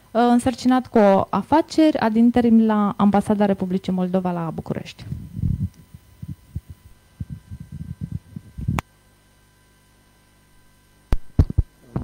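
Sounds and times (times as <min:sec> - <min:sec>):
faint steady hum: 0:00.0 - 0:12.0
microphone handling thumps: 0:05.0 - 0:08.8, 0:11.1 - 0:12.0.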